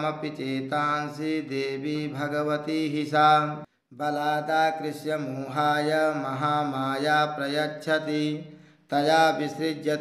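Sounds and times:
person chanting verses: 0:00.0 - 0:10.0.

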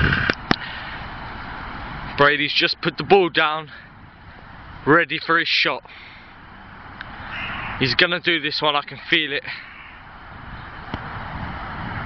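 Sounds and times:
faint outdoor background hiss: 0:00.0 - 0:12.0.

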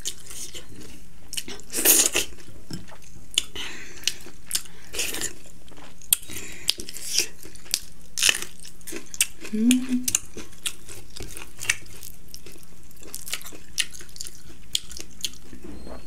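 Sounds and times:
person chewing food: 0:00.0 - 0:16.0.

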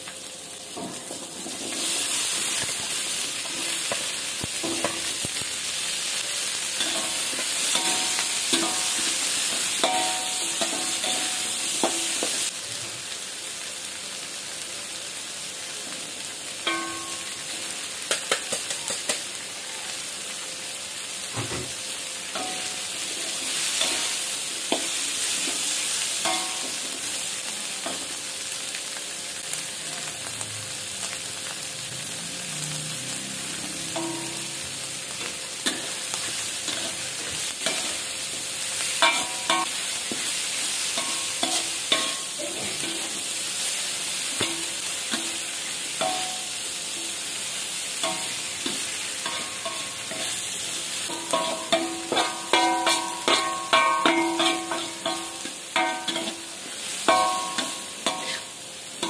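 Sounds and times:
food sizzling in hot oil: 0:00.0 - 0:59.0.

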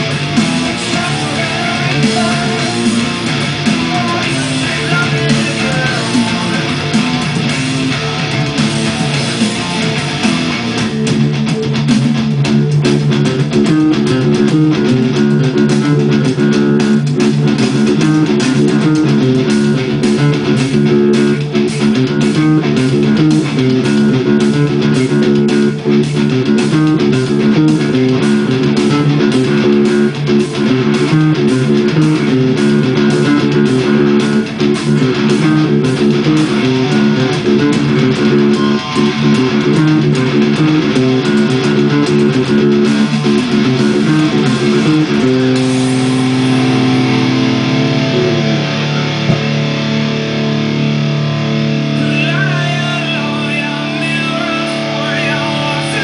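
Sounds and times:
electric bass guitar riff: 0:00.0 - 0:56.0
rock band playing: 0:00.0 - 0:56.0.

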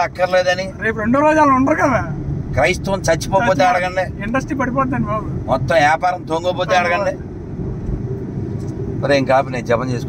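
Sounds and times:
car engine and road noise: 0:00.0 - 0:10.0
person talking: 0:06.4 - 0:07.2.

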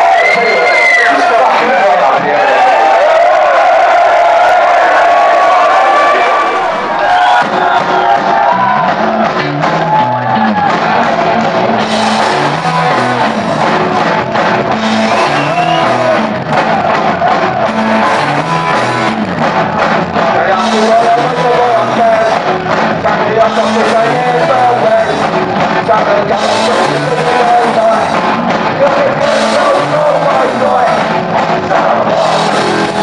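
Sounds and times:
bass guitar line: 0:00.0 - 0:33.0
crowd cheering and shouting: 0:00.0 - 0:33.0
drums: 0:00.0 - 0:33.0
punk rock band playing live: 0:00.0 - 0:33.0.

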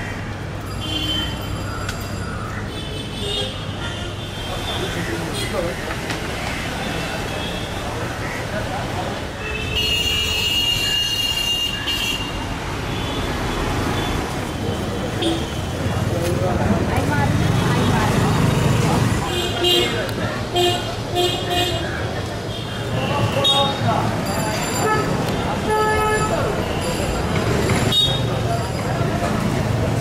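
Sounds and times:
city traffic rumble: 0:00.0 - 0:30.0
people's voices: 0:04.4 - 0:09.6, 0:13.8 - 0:30.0.

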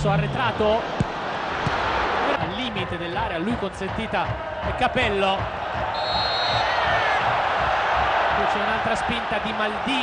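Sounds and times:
stadium crowd roar: 0:00.0 - 0:10.0
referee's whistle blast: 0:06.0 - 0:06.7.

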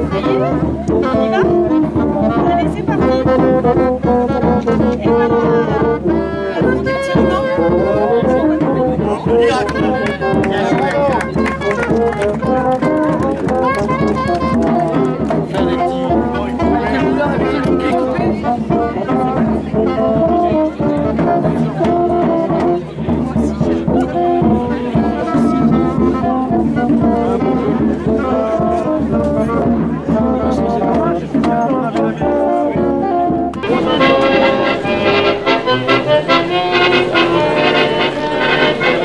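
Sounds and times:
brass instruments playing melody: 0:00.0 - 0:39.0
voices: 0:00.0 - 0:39.0.

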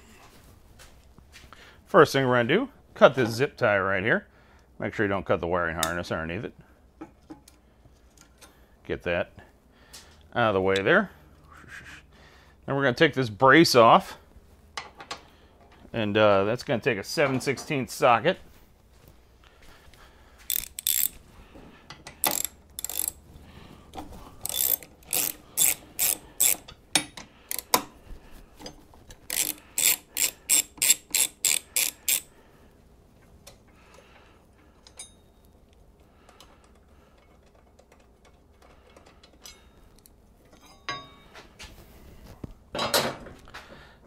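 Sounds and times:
socket ratchet clicking: 0:20.5 - 0:21.2, 0:22.1 - 0:23.2, 0:24.4 - 0:27.9, 0:29.2 - 0:32.3
light taps and clinks: 0:40.5 - 0:41.5.

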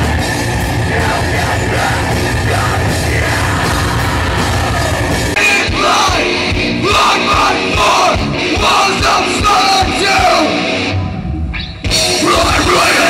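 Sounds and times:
yelled vocals: 0:00.0 - 0:11.0, 0:12.0 - 0:13.0
live heavy rock band: 0:00.0 - 0:13.0.

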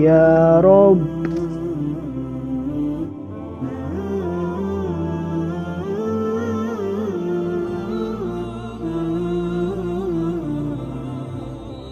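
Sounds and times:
low drone: 0:00.0 - 0:11.9
wordless hummed vocal melody: 0:00.0 - 0:11.9.

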